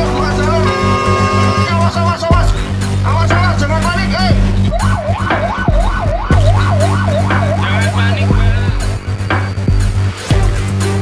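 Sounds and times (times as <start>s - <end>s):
fire truck siren yelping: 4.6s - 8.3s.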